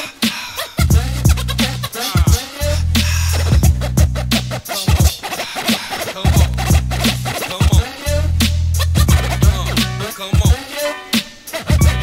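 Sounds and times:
hip hop beat: 0.0s - 12.0s
turntable scratching: 0.0s - 12.0s
bass line: 0.8s - 4.7s, 6.3s - 7.4s, 8.0s - 10.2s, 11.7s - 12.0s
kick drum: 0.9s - 1.4s.

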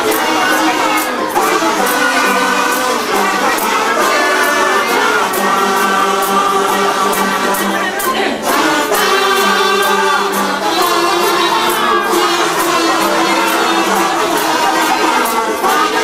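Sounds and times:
kazoos buzzing a tune: 0.0s - 16.0s
people singing: 0.0s - 16.0s
strummed ukulele: 0.0s - 16.0s.

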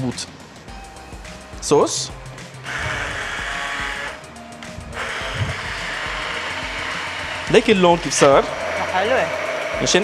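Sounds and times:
immersion blender running: 2.6s - 4.2s, 4.9s - 10.0s.

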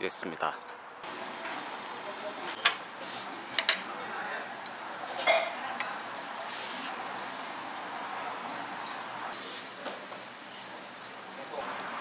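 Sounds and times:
restaurant room noise: 0.0s - 12.0s
metal spoon clinking on bowls: 2.6s - 5.9s.

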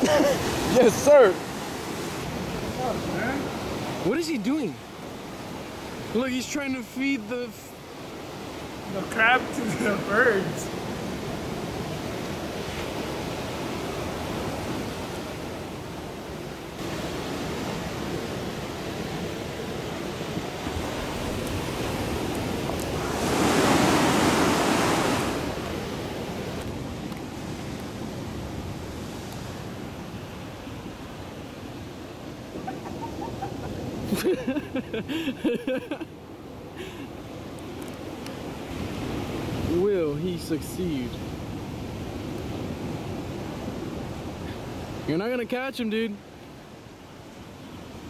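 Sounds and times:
surf washing over rocks: 0.0s - 48.0s
wave breaking: 16.8s - 29.7s.

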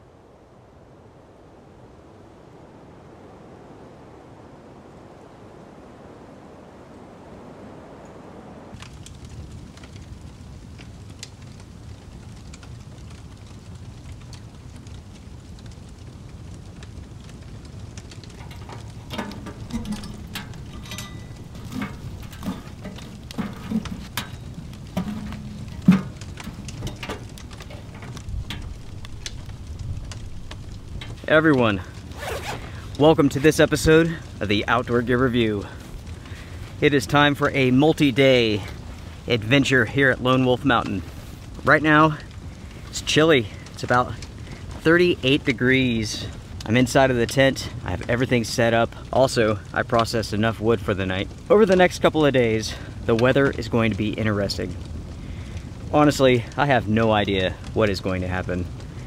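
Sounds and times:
fire crackling and popping: 0.0s - 59.0s
wood fire rumbling: 0.0s - 59.0s.

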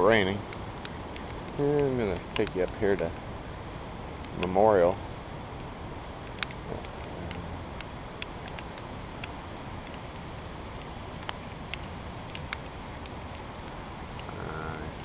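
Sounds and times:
sharp ticks of raindrops: 0.0s - 15.0s
steady rain hiss: 0.0s - 15.0s.

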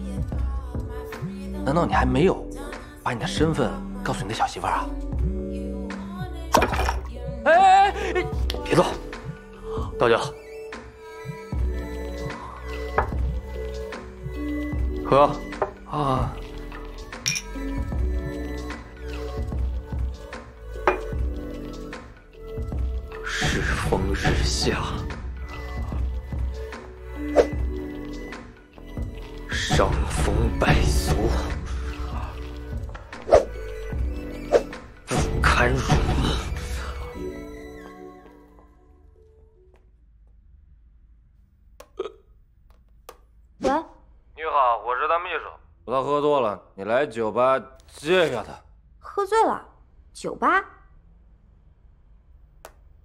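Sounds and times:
background music: 0.0s - 42.2s
drinking glasses clinking: 17.2s - 17.6s, 20.8s - 21.2s
man hiccuping: 41.9s - 42.4s.

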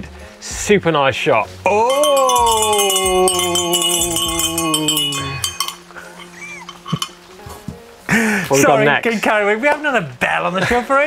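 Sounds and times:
bell jingle sting: 1.7s - 5.8s
person laughing: 6.0s - 6.8s.

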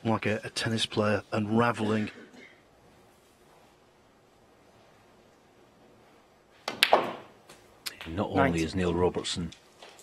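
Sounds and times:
snooker balls clicking: 6.6s - 8.3s
cue tip tapping ball: 6.7s - 7.3s.

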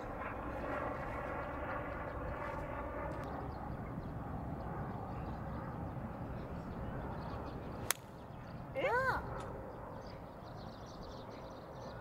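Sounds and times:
distant vehicle drone: 0.0s - 12.0s
low outdoor rumble: 0.0s - 12.0s.

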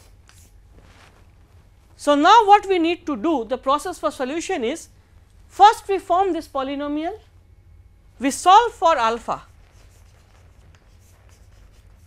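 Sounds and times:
chalk scratching on blackboard: 0.0s - 0.6s, 9.4s - 12.0s
low steady hum: 0.0s - 12.0s.

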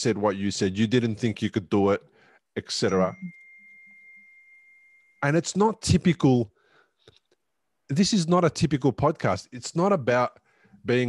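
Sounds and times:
man speaking: 0.0s - 3.2s, 5.2s - 6.5s, 7.9s - 11.0s
faint high-pitched pure tone: 2.8s - 5.5s.

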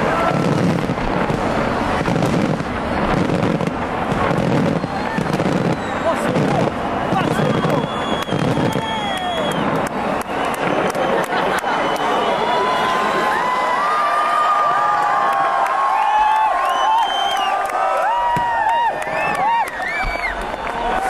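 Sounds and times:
fireworks bursting and crackling: 0.0s - 13.5s, 18.0s - 21.0s
crowd voices: 0.0s - 21.0s.

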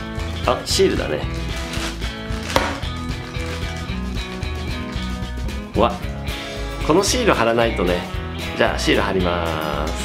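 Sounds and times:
plastic bag crinkling: 1.3s - 4.4s.

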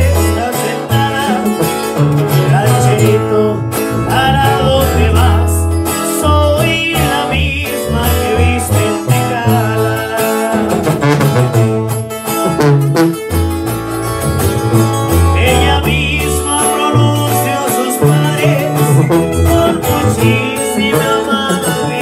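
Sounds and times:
sousaphone bass line: 0.0s - 22.0s
strummed guitars: 0.0s - 22.0s
brass horn: 10.6s - 15.9s.

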